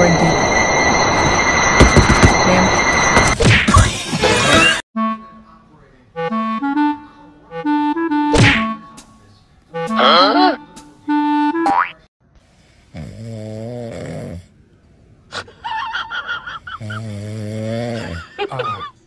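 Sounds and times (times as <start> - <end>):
bouncy woodwind music: 5.0 - 5.5, 6.1 - 11.8
cat snoring: 12.6 - 14.6, 16.8 - 18.2.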